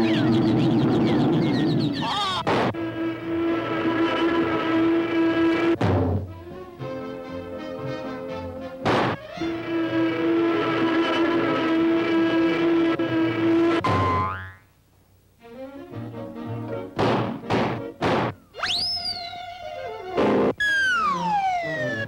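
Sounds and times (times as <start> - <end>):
orchestral cartoon music: 2.8 - 13.8, 15.4 - 18.2, 18.8 - 22.0.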